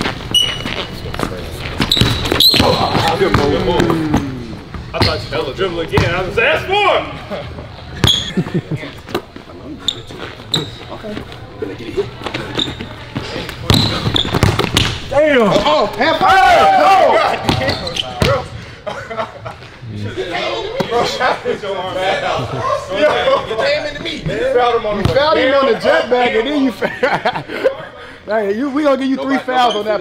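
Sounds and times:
sneaker squeak: 0.0 - 3.5, 5.0 - 5.4, 8.0 - 8.4, 9.8 - 11.2, 12.3 - 16.3, 17.4 - 18.5, 29.5 - 30.0.

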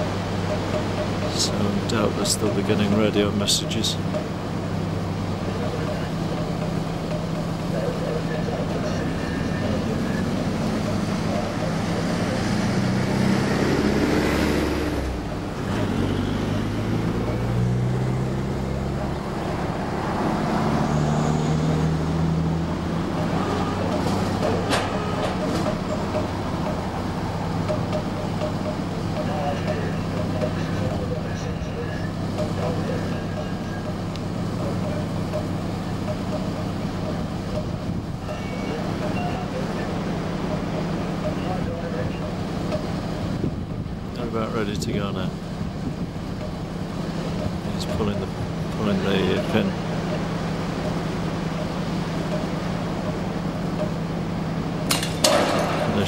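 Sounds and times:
diesel engines idling: 0.0 - 56.0
louder engine rising and falling: 7.8 - 43.5.

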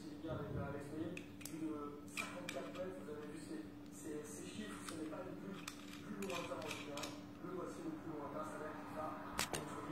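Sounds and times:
steady low hum: 0.0 - 9.9
metal parts clicking: 1.1 - 3.0, 4.8 - 7.2.

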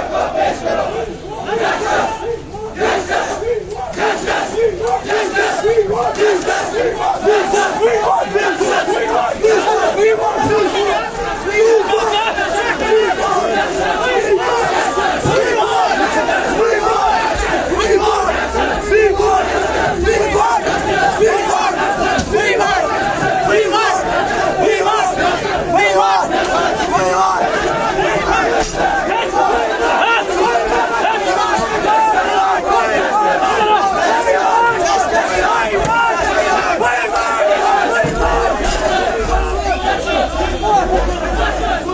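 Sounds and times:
crowd shouting: 0.0 - 41.9.

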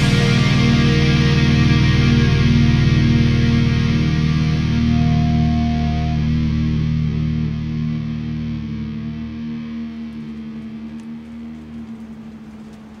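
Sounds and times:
distorted electric guitar chord: 0.0 - 13.0.

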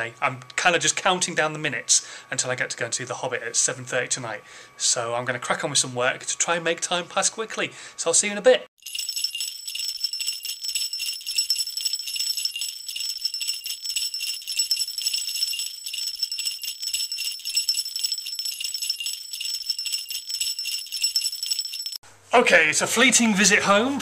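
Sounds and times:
sleigh bells jingling: 8.8 - 22.0.

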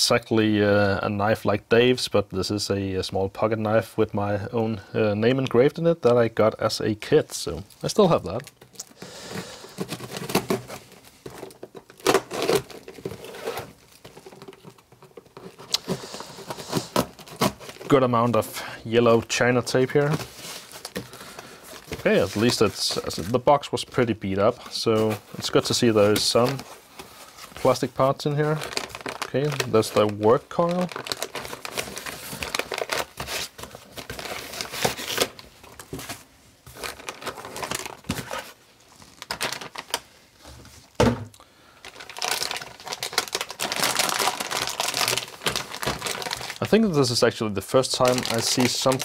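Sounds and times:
plastic bag crinkling: 7.8 - 18.3, 24.6 - 40.1, 41.8 - 46.9, 47.9 - 49.0
tape and cardboard rustling: 8.3 - 18.3, 19.6 - 23.5, 24.4 - 40.9.

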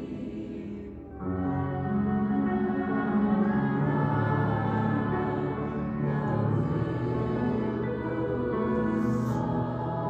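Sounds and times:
youth choir singing sustained chords: 0.0 - 10.0.

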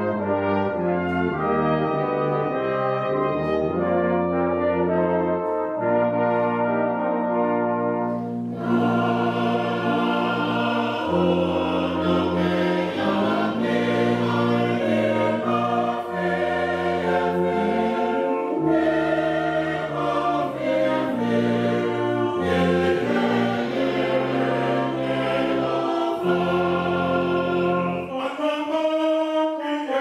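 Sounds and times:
brass band playing: 0.0 - 30.0
congregation singing a hymn: 0.0 - 30.0.

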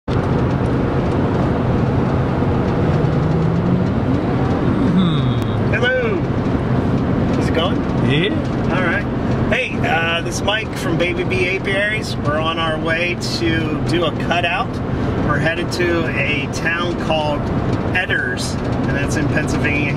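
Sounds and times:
car cabin road and engine noise: 0.1 - 19.9.

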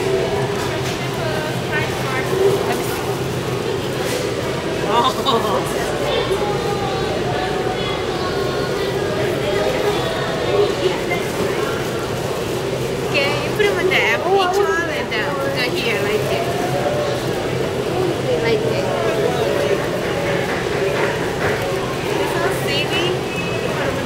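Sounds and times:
people talking: 0.0 - 24.0.

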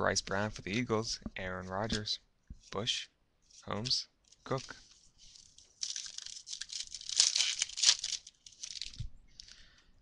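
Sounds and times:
plastic wrapper tearing and crinkling: 5.3 - 9.6.

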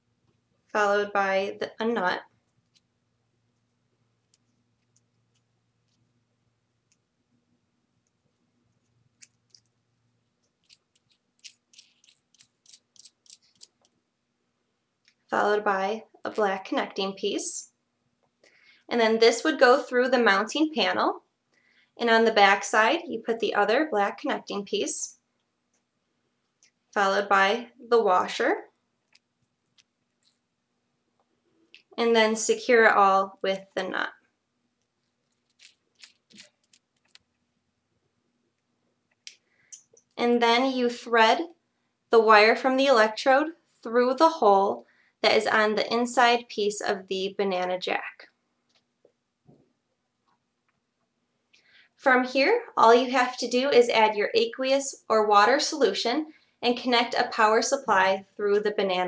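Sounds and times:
small parts clicking: 10.4 - 14.0, 29.1 - 30.4, 34.8 - 37.3
small parts scraping: 10.4 - 14.0, 29.1 - 30.5, 34.8 - 37.4.

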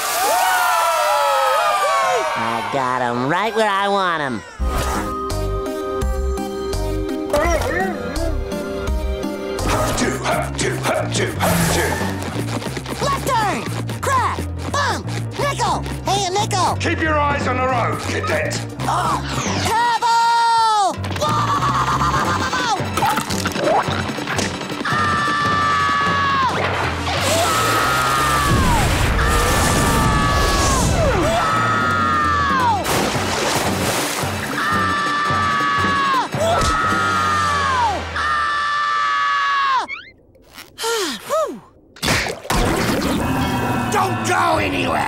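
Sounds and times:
background music: 1.6 - 45.0.

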